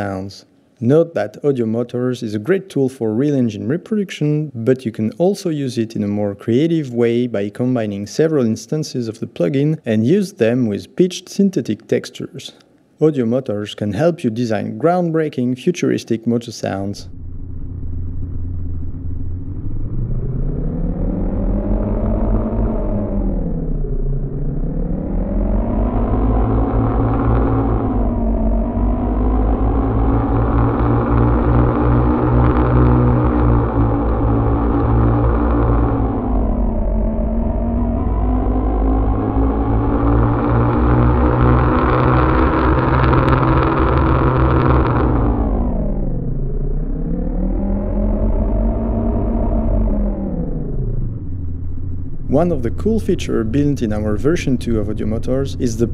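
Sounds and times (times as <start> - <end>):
steady low drone: 16.8 - 55.9
synthetic engine revving: 17.0 - 55.9.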